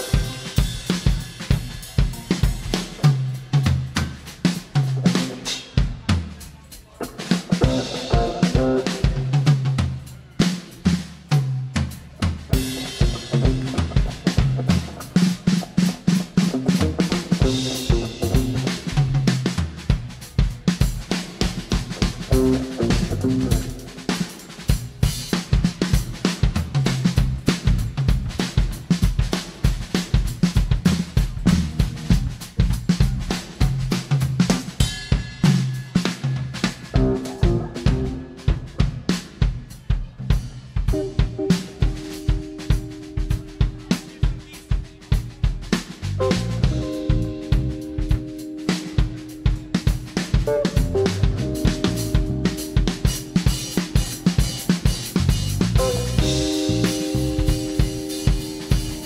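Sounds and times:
drum kit solo: 0.0s - 59.0s
bass line: 7.6s - 10.1s, 11.3s - 15.6s, 16.4s - 20.3s, 21.8s - 24.1s, 24.8s - 29.3s, 29.9s - 34.8s, 36.8s - 39.2s, 40.2s - 59.0s.

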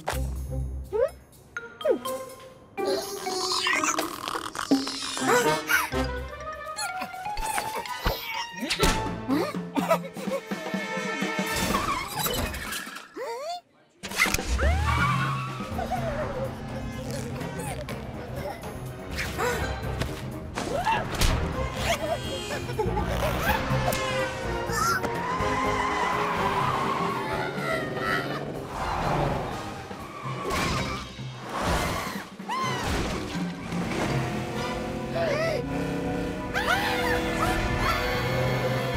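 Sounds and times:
cartoon background music: 0.0s - 13.2s, 14.1s - 38.9s
cartoon music: 0.8s - 10.8s.

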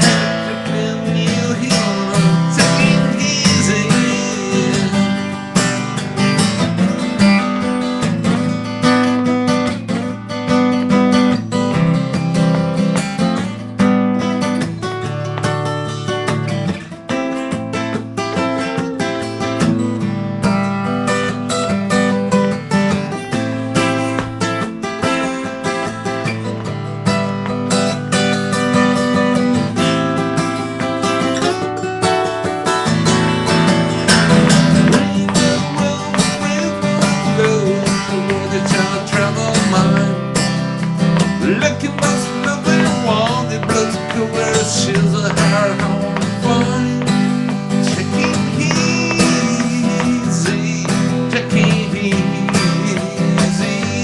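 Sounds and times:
acoustic guitar strummed: 0.0s - 54.0s.

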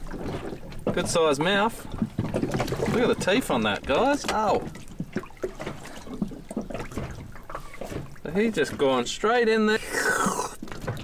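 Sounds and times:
water splashing and squelching: 0.0s - 11.0s.

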